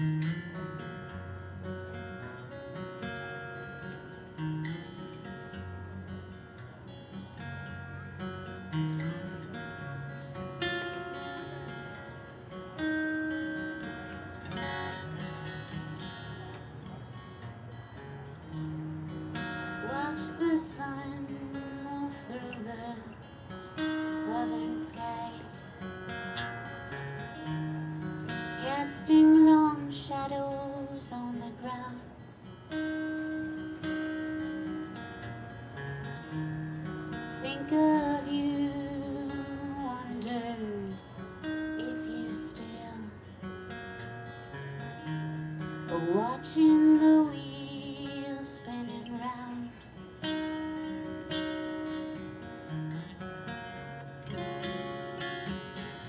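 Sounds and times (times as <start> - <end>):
acoustic guitar picking: 0.0 - 56.0
woman singing: 19.8 - 23.3, 24.0 - 25.6, 28.5 - 32.2, 37.3 - 43.2, 45.9 - 49.9.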